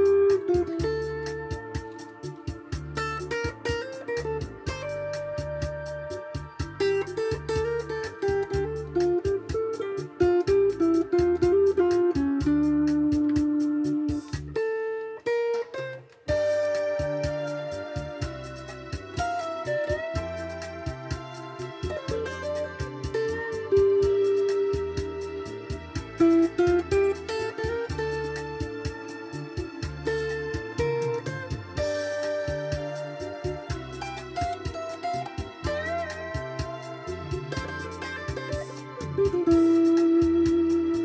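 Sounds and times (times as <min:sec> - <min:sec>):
steady beat and bass line: 0:00.0 - 0:14.7, 0:16.3 - 0:41.0
electric guitar lead melody: 0:00.0 - 0:41.0.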